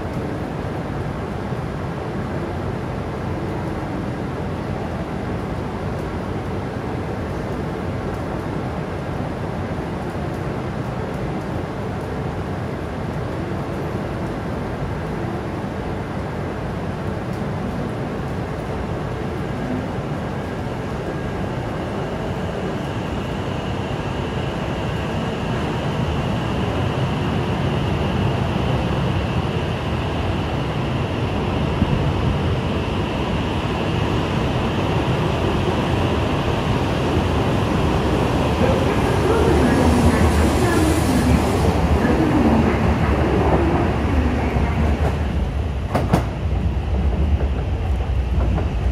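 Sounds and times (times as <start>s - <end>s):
train pulling away: 22.4s - 48.9s.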